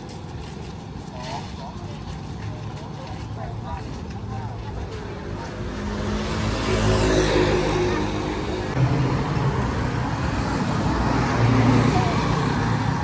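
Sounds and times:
faint voices talking: 0:00.0 - 0:08.8, 0:10.6 - 0:13.0
road traffic hum: 0:00.0 - 0:13.0.

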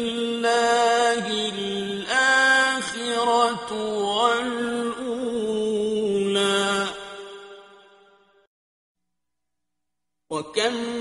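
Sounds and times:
man chanting melodically: 0:00.0 - 0:07.7, 0:10.3 - 0:11.0.

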